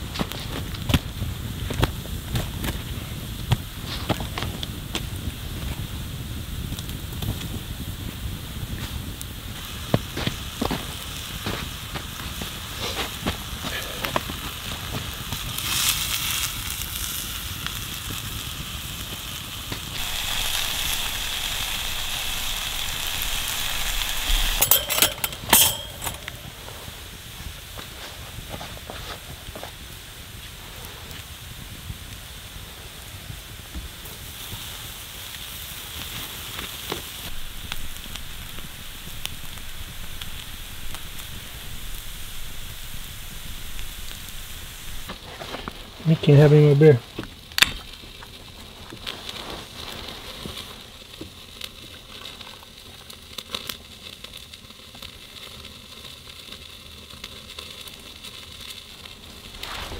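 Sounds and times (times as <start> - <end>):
campfire crackling and popping: 0.0 - 59.9
frying pan sizzling: 0.0 - 59.9.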